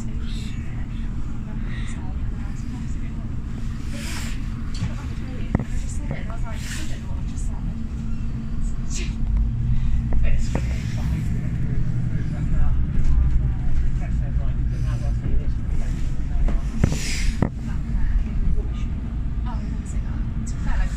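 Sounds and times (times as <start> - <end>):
train rumble and engine hum: 0.0 - 20.9.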